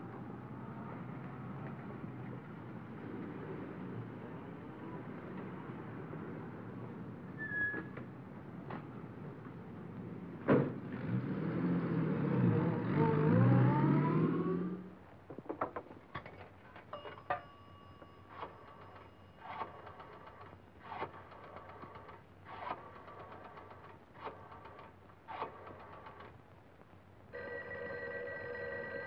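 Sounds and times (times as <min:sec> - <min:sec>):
car engine revving: 0:11.0 - 0:14.9
payphone ringing chime: 0:16.9 - 0:19.8, 0:27.3 - 0:29.0.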